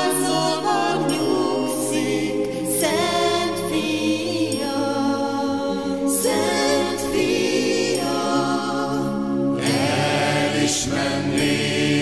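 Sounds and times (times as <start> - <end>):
steady musical accompaniment: 0.0 - 12.0
voices singing with vibrato: 0.0 - 12.0.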